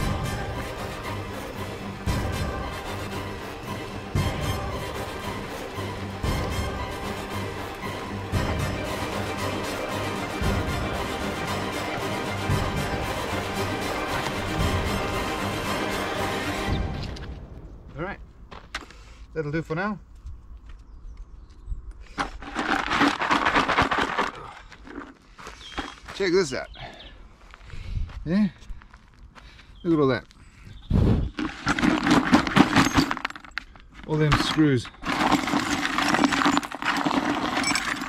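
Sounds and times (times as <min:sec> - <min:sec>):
nails clinking into bucket: 0:31.4 - 0:33.6, 0:34.3 - 0:38.0.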